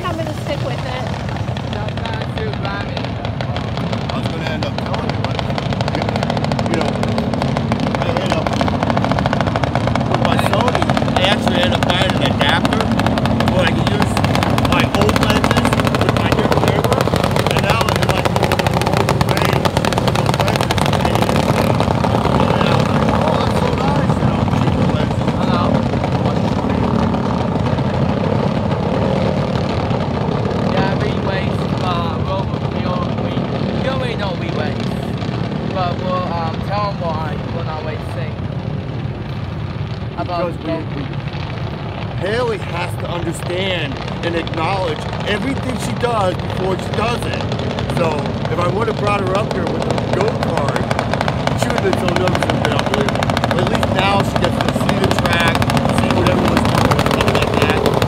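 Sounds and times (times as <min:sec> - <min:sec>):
voices: 0:00.0 - 0:29.5, 0:30.5 - 0:38.6, 0:40.0 - 0:58.0
racing lawn mower engines: 0:00.0 - 0:58.0.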